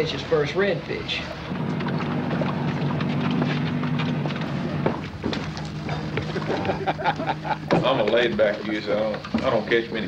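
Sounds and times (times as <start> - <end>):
outboard motor droning: 0.0 - 10.0.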